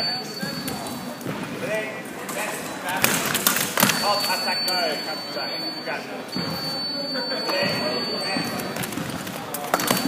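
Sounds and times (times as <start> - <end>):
voices in hall: 0.0 - 10.0.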